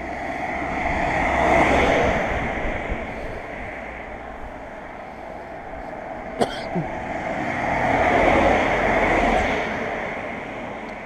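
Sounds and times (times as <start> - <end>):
car driving past: 0.0 - 4.7.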